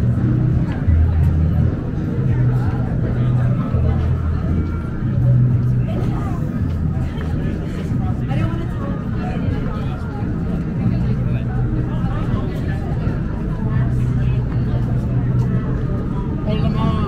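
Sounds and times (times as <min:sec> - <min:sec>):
city traffic rumble: 0:00.0 - 0:17.0
passers-by talking: 0:00.0 - 0:17.0.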